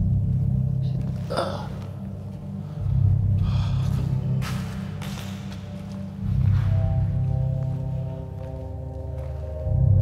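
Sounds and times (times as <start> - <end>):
dark low drone music: 0.0 - 10.0.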